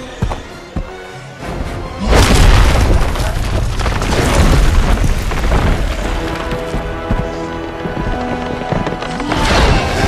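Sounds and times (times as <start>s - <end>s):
film score music: 0.0s - 10.0s
deep boom and rumbling crash: 2.1s - 6.1s.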